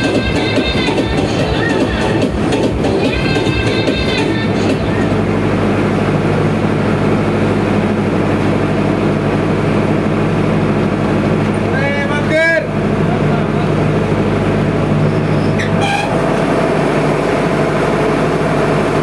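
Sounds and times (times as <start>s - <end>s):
loud distorted dance music: 0.0s - 5.2s.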